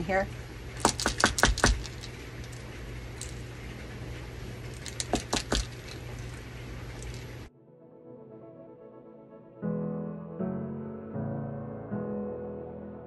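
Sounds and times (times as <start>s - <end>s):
room hum: 0.0s - 7.5s
mixing ball clicking in bottle: 0.8s - 3.5s, 4.7s - 7.4s
soft piano music: 7.5s - 13.0s.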